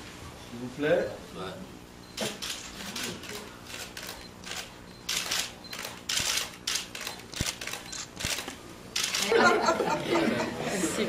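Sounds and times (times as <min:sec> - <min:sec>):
camera shutters clicking: 0:02.2 - 0:09.4.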